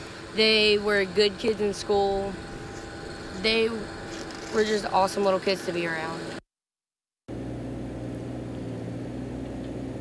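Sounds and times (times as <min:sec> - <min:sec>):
low mechanical hum: 0:00.0 - 0:06.4, 0:07.3 - 0:10.0
low rumble: 0:00.0 - 0:06.4.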